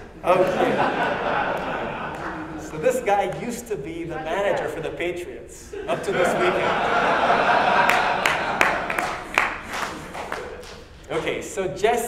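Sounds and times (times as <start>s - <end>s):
audience laughter in a hall: 0.2s - 2.8s, 5.7s - 10.7s
scattered hand claps: 0.4s - 3.7s, 7.7s - 11.5s.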